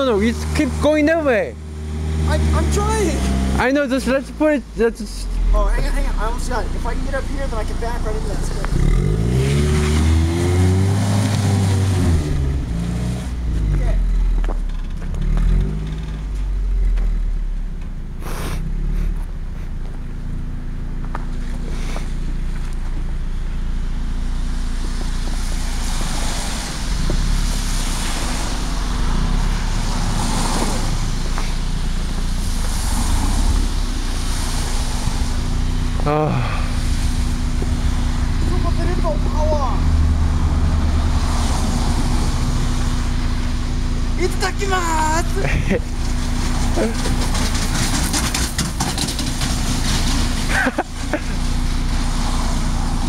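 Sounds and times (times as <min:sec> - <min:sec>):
car engine revving and idling: 0:00.0 - 0:53.0.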